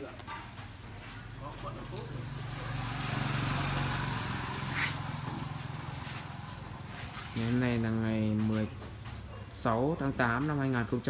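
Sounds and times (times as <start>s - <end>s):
vehicle engine running: 1.7s - 9.0s.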